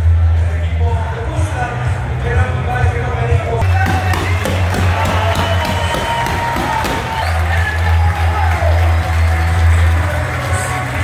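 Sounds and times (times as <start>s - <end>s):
bass-heavy music over loudspeakers: 0.0s - 11.0s
crowd cheering and whooping: 3.6s - 11.0s.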